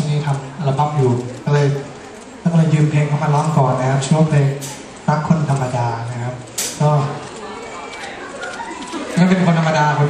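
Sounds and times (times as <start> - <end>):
audience cheering and calling out: 7.4 - 10.0.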